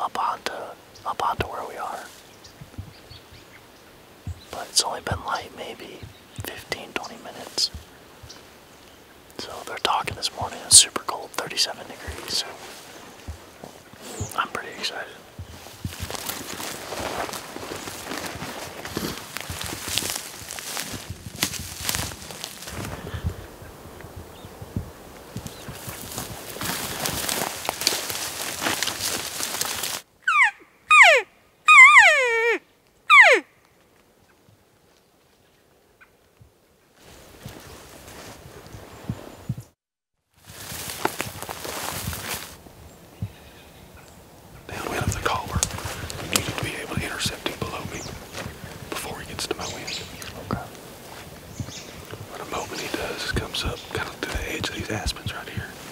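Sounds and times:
footsteps through dry brush: 11.6s - 30.1s, 37.0s - 39.4s, 40.3s - 43.6s, 44.7s - 55.9s
elk calling: 30.2s - 33.5s.

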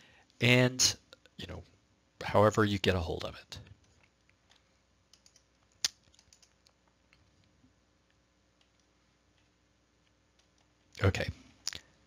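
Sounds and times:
computer mouse clicks: 3.8s - 7.3s, 8.6s - 11.0s.

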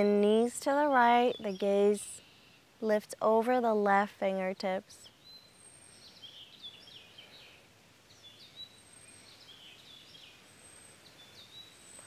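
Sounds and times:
faint songbirds chirping: 0.0s - 12.0s
outdoor background noise: 0.0s - 12.0s.

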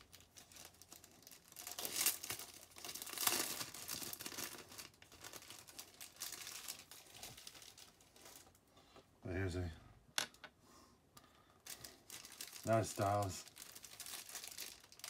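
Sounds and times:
crinkling and rustling: 0.0s - 9.2s, 11.3s - 15.0s.

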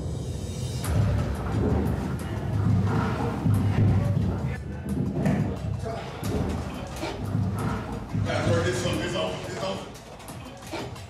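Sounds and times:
background music with deep bass: 0.0s - 11.0s.

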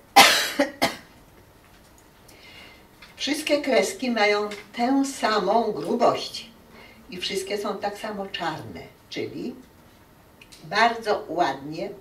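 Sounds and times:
woman coughing: 0.2s - 1.1s.

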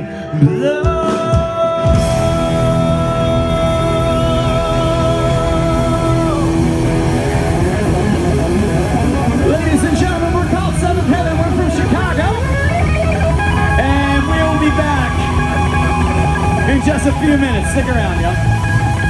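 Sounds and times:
live rock band chord: 0.0s - 19.0s
loose electric guitar playing: 0.0s - 19.0s
crowd cheering and shouting: 0.3s - 19.0s.

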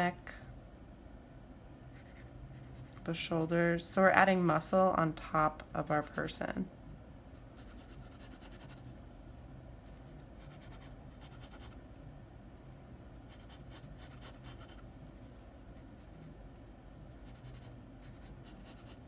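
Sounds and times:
pencil sketching on paper: 13.3s - 14.8s, 17.1s - 19.0s.

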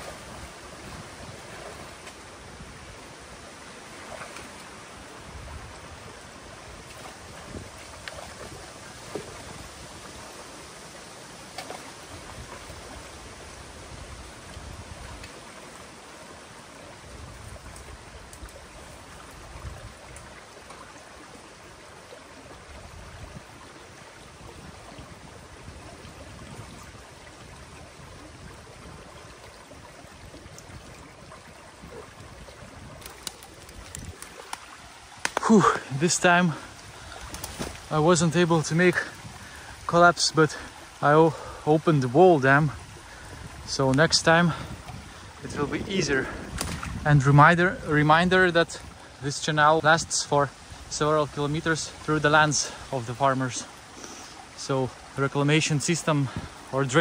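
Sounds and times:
water rushing through dam: 0.0s - 57.0s.

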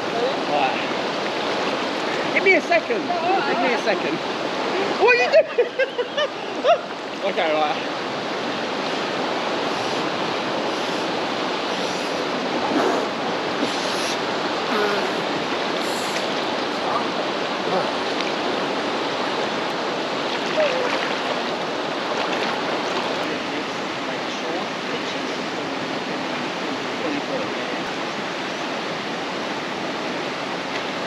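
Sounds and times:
river rushing over rocks: 0.0s - 31.0s
water splashes: 0.0s - 31.0s.

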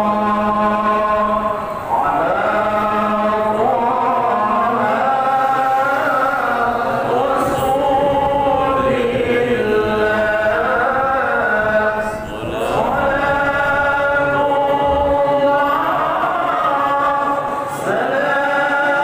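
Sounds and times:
voices chanting devotional song: 0.0s - 19.0s.

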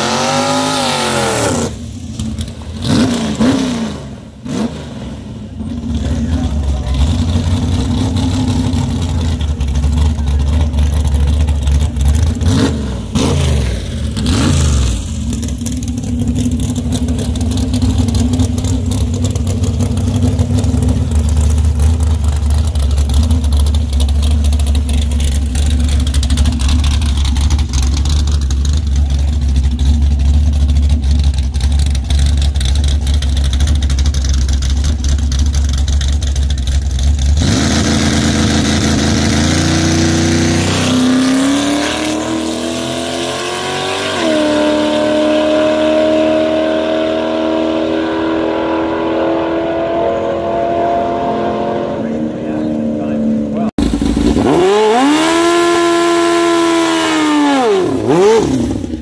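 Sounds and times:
dragster engine revving and idling: 0.0s - 59.0s.

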